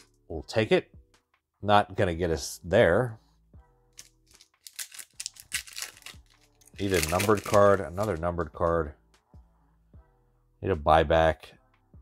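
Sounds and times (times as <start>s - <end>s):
card pack wrapper tearing and crinkling: 4.0s - 8.2s.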